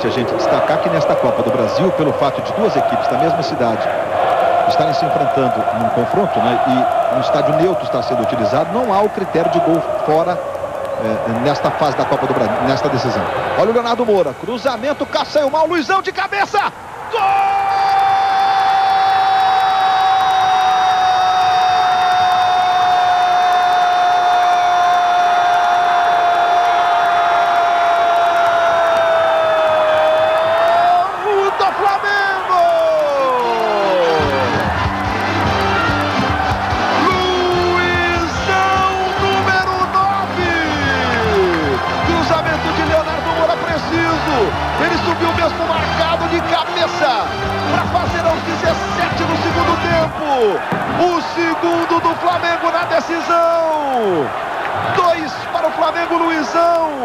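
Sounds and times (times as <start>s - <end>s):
commentator shouting: 36.9s - 54.3s.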